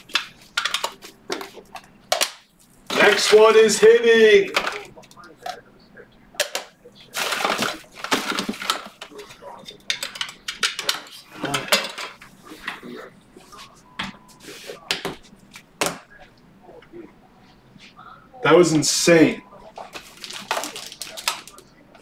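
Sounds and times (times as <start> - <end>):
cards rustling: 0.0 - 5.6, 6.5 - 12.7, 19.7 - 21.7.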